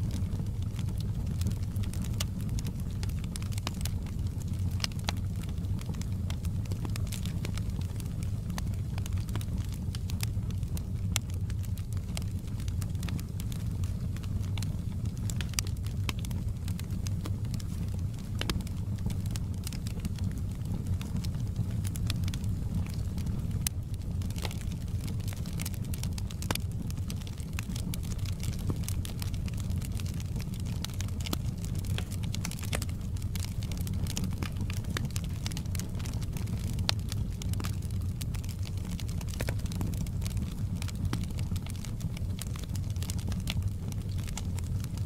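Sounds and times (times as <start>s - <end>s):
low rumble of burning logs: 0.0s - 45.0s
wood fire crackling and popping: 0.0s - 45.0s.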